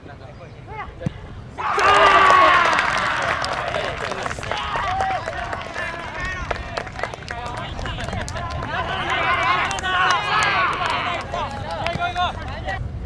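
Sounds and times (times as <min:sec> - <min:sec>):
voices shouting and cheering: 0:00.7 - 0:12.9
sharp claps: 0:01.8 - 0:12.6.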